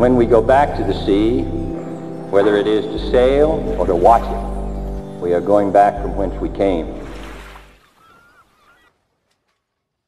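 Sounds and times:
closing music with deep bass: 0:00.0 - 0:07.7
faint gliding tones: 0:00.0 - 0:08.8.

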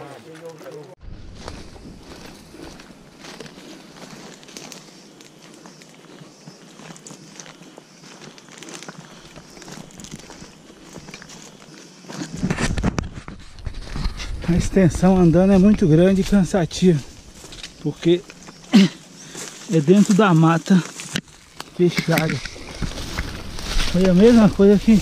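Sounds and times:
footsteps on dry leaves and twigs: 0:00.0 - 0:25.0
brushing through foliage: 0:06.8 - 0:25.0.

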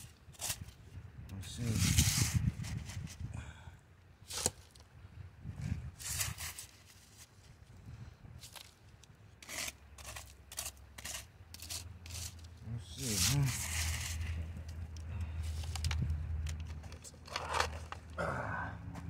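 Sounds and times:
scoop scraping wet gravel: 0:00.0 - 0:00.8, 0:01.6 - 0:03.1, 0:04.2 - 0:04.8, 0:05.9 - 0:07.4, 0:08.4 - 0:08.8, 0:09.4 - 0:16.0
steady low rumble: 0:10.2 - 0:19.0.

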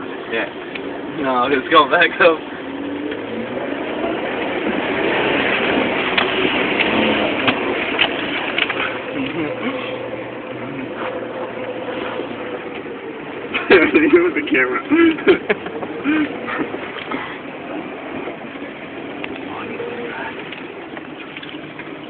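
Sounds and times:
car engine running: 0:00.0 - 0:22.0.

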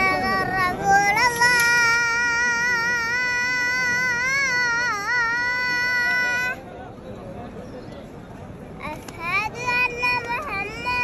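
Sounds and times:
crowd murmur: 0:00.0 - 0:11.0.

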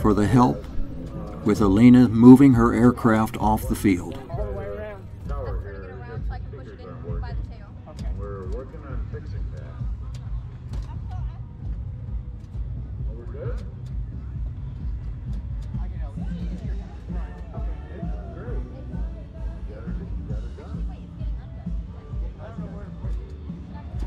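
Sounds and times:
steady low rumble: 0:00.0 - 0:07.7
people talking: 0:00.0 - 0:09.5.

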